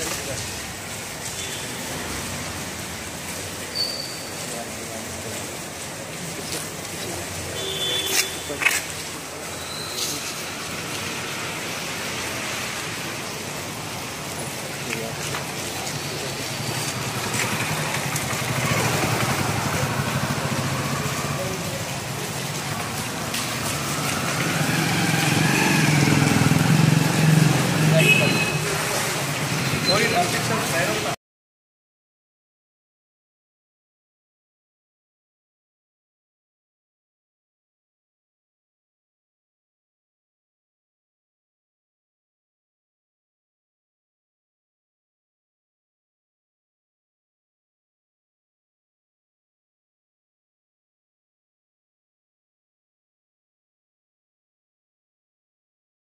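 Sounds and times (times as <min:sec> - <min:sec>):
street traffic noise: 0:00.0 - 0:31.2.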